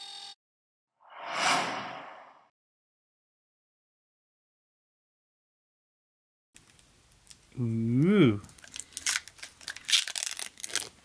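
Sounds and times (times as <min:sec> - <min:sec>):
plastic film peeling off: 0:08.4 - 0:11.0.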